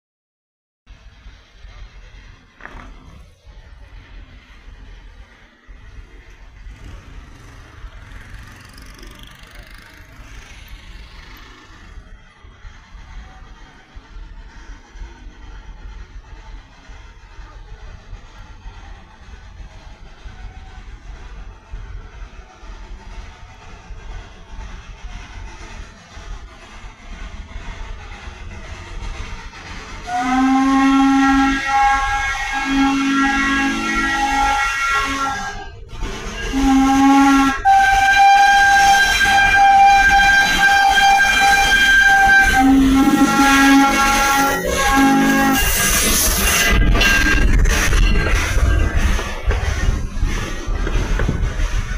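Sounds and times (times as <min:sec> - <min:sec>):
steam hissing: 0:00.9 - 0:51.9
steam locomotive rumble: 0:00.9 - 0:51.9
steam whistle blasts: 0:30.0 - 0:49.0.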